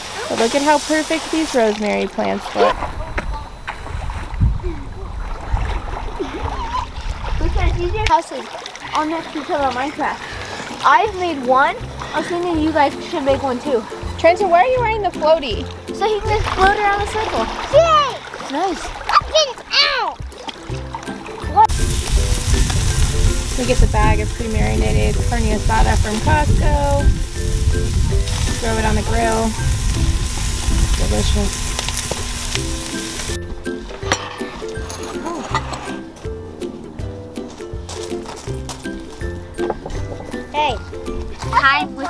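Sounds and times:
meat sizzling on a grill: 0.0 - 2.0, 21.7 - 33.4
wind buffeting microphone: 2.7 - 8.1, 21.6 - 33.4.

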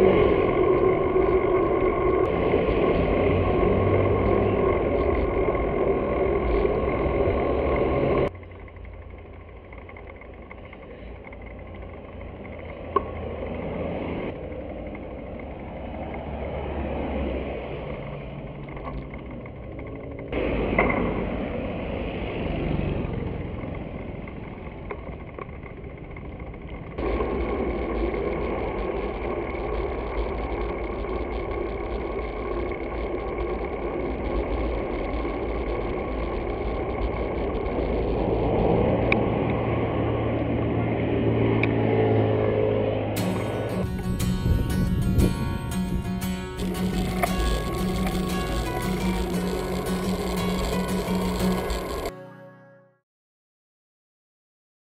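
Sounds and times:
motor vehicles passing: 0.0 - 52.5
traffic noise: 0.0 - 52.5
wind on microphone: 43.2 - 52.1.

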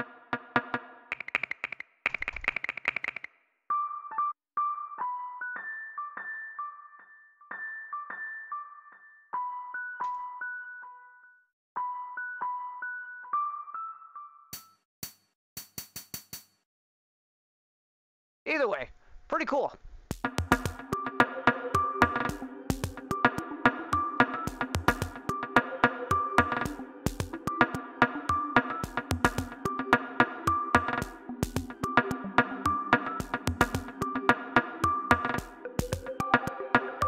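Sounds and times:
sharp percussion samples: 0.0 - 3.3, 20.1 - 21.2, 28.6 - 29.7, 32.9 - 34.1, 35.1 - 36.9
pitched electronic drum hits: 20.1 - 21.0, 33.0 - 34.0.

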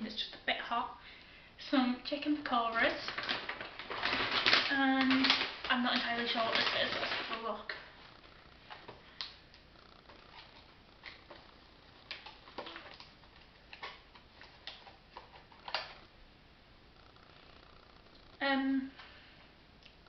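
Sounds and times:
foil container crinkling: 2.1 - 16.0.

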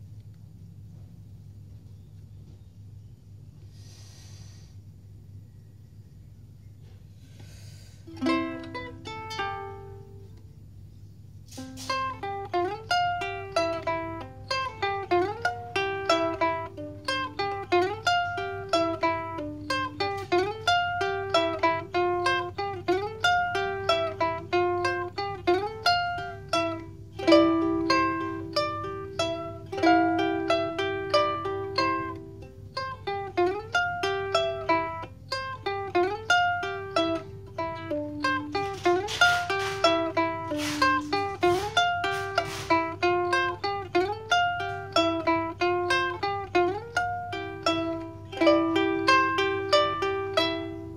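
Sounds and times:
ukulele fingerpicked melody: 8.0 - 10.6, 11.3 - 50.9.

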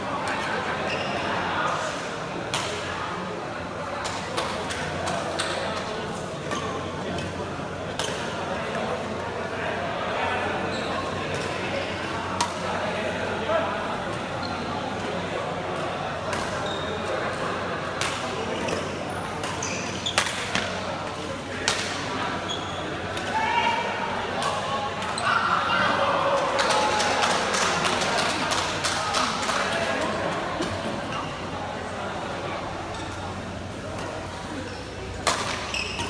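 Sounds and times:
murmur of voices in a hall: 0.0 - 36.0
rackets hitting shuttlecock: 35.2 - 36.0.

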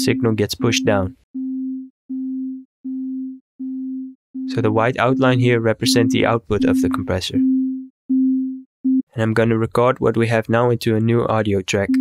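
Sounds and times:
low sine wave notes: 0.0 - 9.0.

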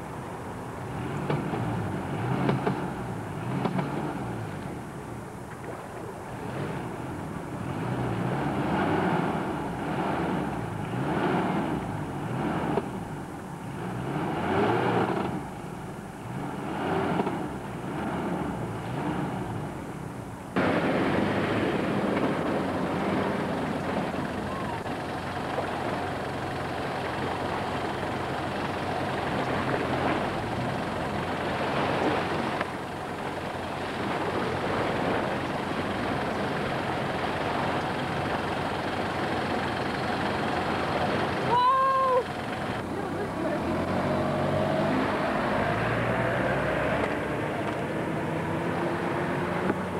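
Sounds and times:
car engine revving: 0.8 - 4.6, 6.3 - 19.9, 20.6 - 49.9
car engine driving over sand: 0.8 - 4.9, 6.3 - 41.7.

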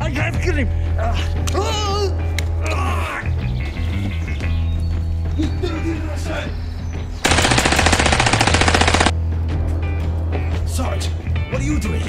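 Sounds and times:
background music: 0.0 - 12.0
machine-gun fire: 7.2 - 9.2.

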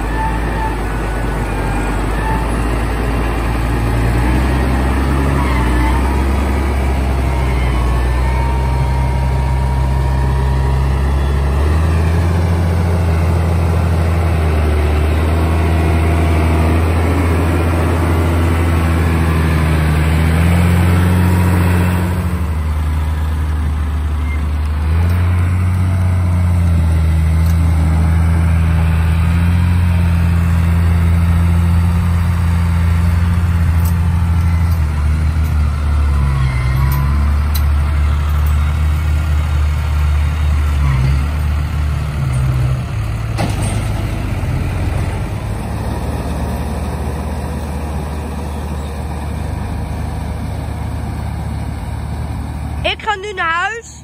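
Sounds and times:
tractor diesel engines running: 0.0 - 54.0.

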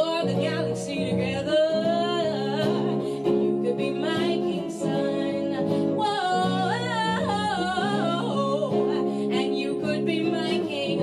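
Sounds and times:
woman singing melodic run: 0.0 - 11.0.

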